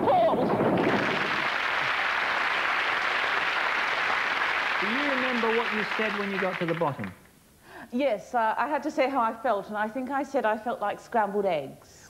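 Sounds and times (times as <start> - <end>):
studio audience applauding: 0.6 - 7.2.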